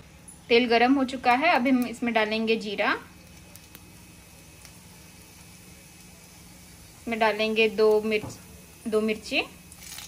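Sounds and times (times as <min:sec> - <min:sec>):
seeds sizzling in hot oil: 0:00.0 - 0:10.0.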